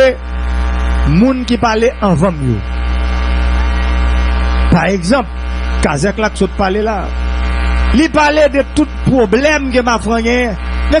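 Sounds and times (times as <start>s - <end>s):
electrical hum: 0.0s - 11.0s
person speaking: 3.5s - 7.2s, 7.8s - 11.0s.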